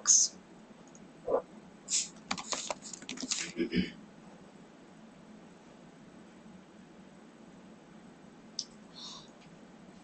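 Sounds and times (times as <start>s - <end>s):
sharp keyboard keystrokes: 2.2s - 3.5s.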